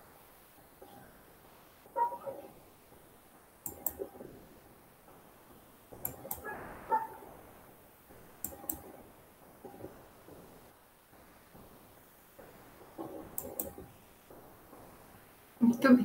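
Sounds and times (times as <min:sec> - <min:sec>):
mouse and keyboard clicks: 0:03.6 - 0:04.2, 0:06.0 - 0:06.5, 0:08.4 - 0:09.0, 0:13.0 - 0:13.9.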